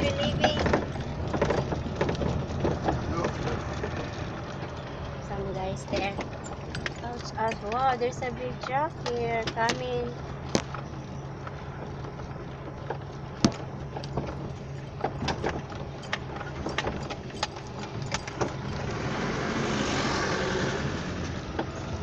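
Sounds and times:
rattles and knocks inside vehicle: 0.0 - 19.6, 21.2 - 22.0
low engine hum: 0.0 - 22.0
truck passing by: 0.0 - 22.0.

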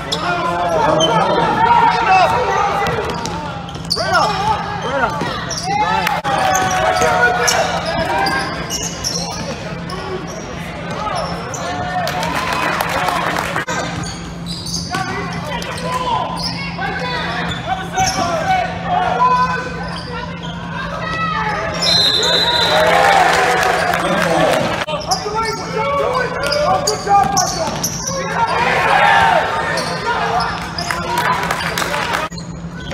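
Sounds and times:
shoe squeaks: 0.0 - 2.2, 3.0 - 11.9, 13.7 - 18.6, 19.2 - 22.8, 24.9 - 28.8, 29.5 - 32.9
whistle: 21.8 - 23.1
people shouting: 28.1 - 31.6.

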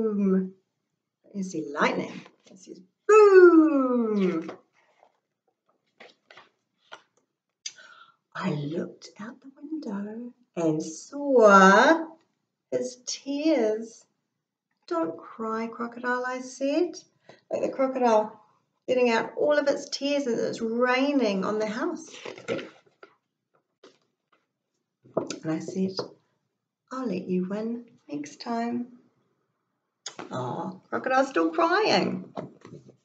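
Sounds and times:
person speaking: 1.4 - 4.5, 25.2 - 26.1
book pages turning: 4.3 - 5.2, 5.8 - 7.2, 22.1 - 23.2.

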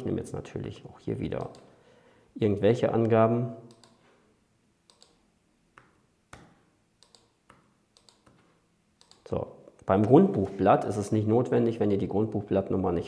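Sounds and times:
mouse clicks: 1.4 - 1.7, 3.7 - 4.0, 4.8 - 5.2, 5.8 - 10.2
keyboard keystrokes: 4.9 - 5.2, 5.8 - 8.4.

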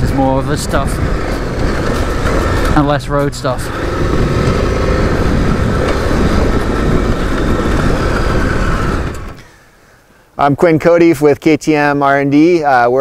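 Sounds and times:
motorcycle engine running: 0.0 - 9.4
riding noise: 0.0 - 9.6.

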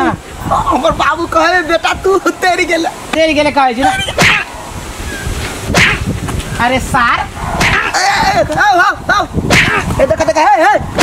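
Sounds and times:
man crying out: 7.8 - 8.5.

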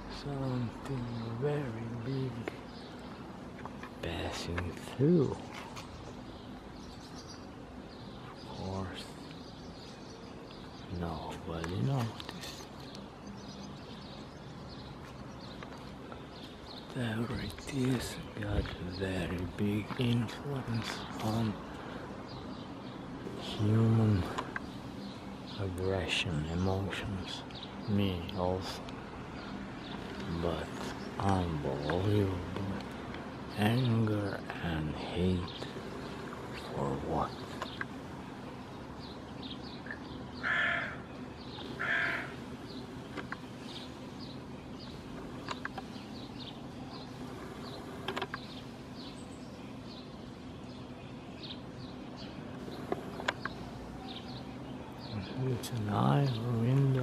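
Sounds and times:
small birds chirping: 0.0 - 57.0
loud bird call: 35.4 - 50.2.

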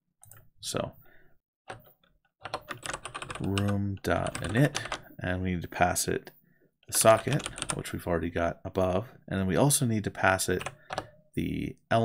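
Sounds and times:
computer keyboard typing: 1.7 - 5.0, 7.0 - 7.8, 10.6 - 11.1.

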